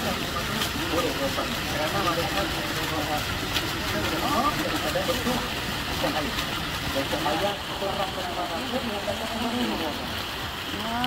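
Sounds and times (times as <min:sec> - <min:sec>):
fountain splashing into pool: 0:00.0 - 0:11.0
people chattering: 0:00.0 - 0:11.0.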